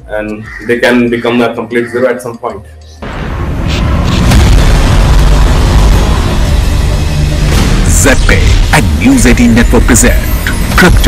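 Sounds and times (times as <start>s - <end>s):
deep boom and rumble: 3.0s - 9.6s.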